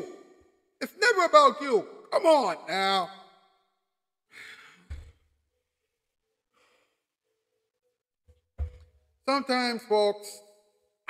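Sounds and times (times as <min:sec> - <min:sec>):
faint breath: 0:04.3 - 0:05.1, 0:06.5 - 0:07.1.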